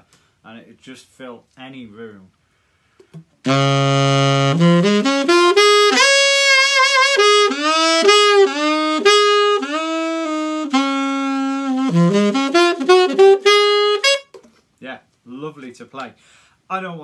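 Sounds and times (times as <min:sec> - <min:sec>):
solo alto saxophone: 0:03.4 - 0:14.4.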